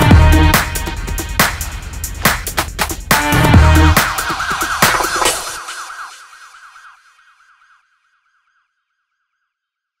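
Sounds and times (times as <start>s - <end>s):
siren-like synth tone: 3.9s - 10.0s.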